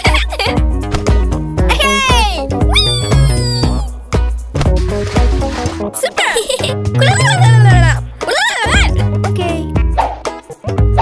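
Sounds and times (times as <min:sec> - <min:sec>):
cartoon music with steady beat: 0:00.0 - 0:11.0
cartoon kitten gliding cries: 0:02.7 - 0:03.9.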